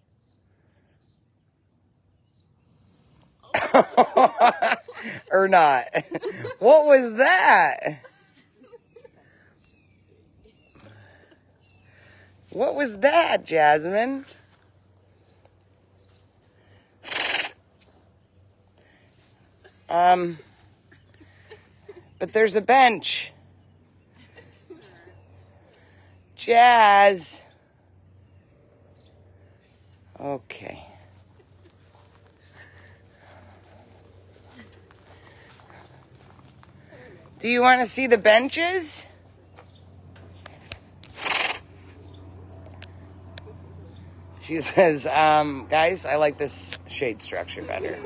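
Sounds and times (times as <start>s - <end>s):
tiger hissing: 17.0s - 17.7s, 41.1s - 41.8s.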